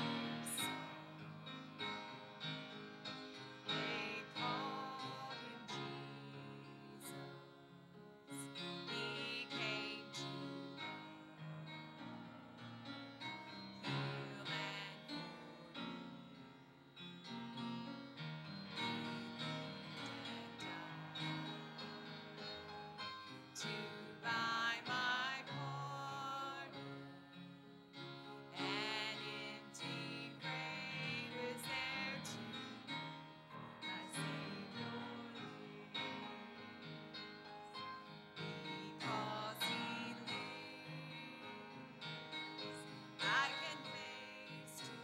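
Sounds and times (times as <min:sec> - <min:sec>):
woman singing lead: 0:00.0 - 0:01.2, 0:03.6 - 0:07.4, 0:08.3 - 0:11.7, 0:13.8 - 0:16.0, 0:23.6 - 0:26.8, 0:28.6 - 0:32.9, 0:38.7 - 0:41.9, 0:42.5 - 0:45.0
congregation singing a hymn: 0:00.0 - 0:12.5, 0:13.2 - 0:16.4, 0:18.7 - 0:27.2, 0:28.2 - 0:45.0
piano accompaniment: 0:00.0 - 0:45.0.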